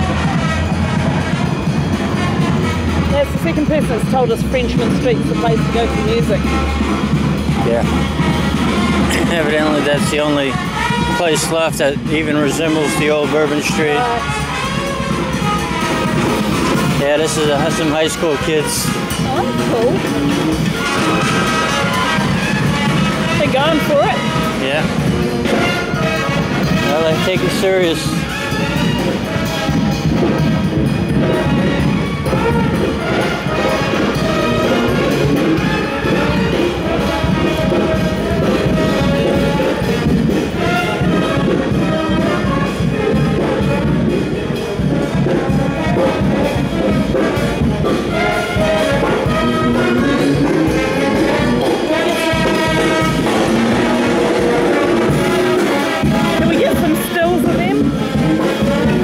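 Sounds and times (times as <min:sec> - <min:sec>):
brass band playing: 0:00.0 - 0:59.0.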